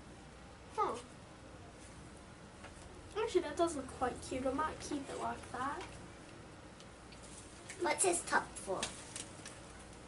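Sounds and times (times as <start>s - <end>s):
girl's voice: 0.7s - 1.1s, 3.2s - 5.9s, 7.8s - 9.0s.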